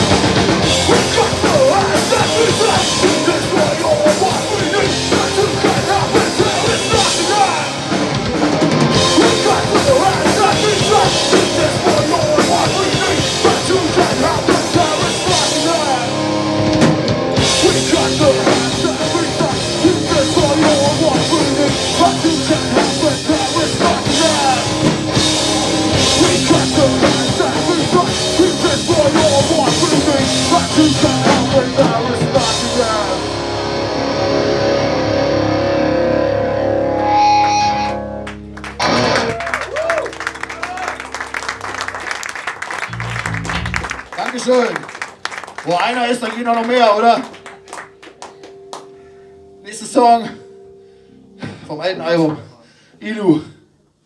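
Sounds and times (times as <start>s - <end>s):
drum kit: 0.0s - 34.3s, 38.6s - 48.9s
distorted electric guitars: 0.0s - 52.2s
shouted vocals: 0.8s - 7.8s.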